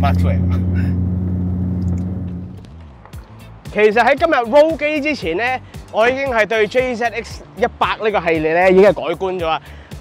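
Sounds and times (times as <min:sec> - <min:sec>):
car engine drone from inside cabin: 0:00.0 - 0:02.8.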